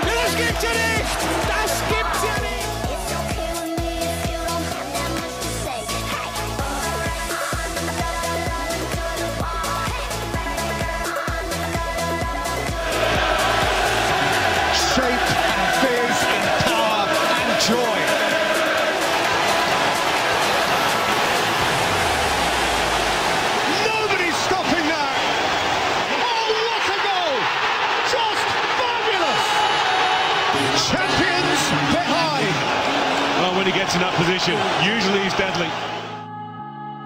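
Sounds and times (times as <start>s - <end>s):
stadium crowd chanting: 0.0s - 7.7s, 12.0s - 36.2s
electronic background music: 0.0s - 25.6s, 29.1s - 37.0s.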